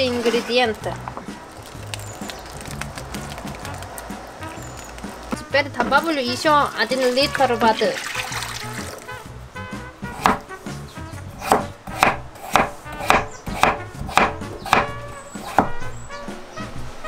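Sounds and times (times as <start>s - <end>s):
knife chopping potato on board: 10.1s - 10.5s, 11.4s - 15.8s.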